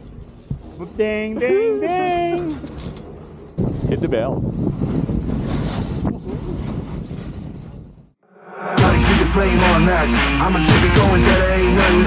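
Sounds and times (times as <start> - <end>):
wind buffeting microphone: 2.4 - 8.2
snowboard sliding over snow: 4.6 - 7.8.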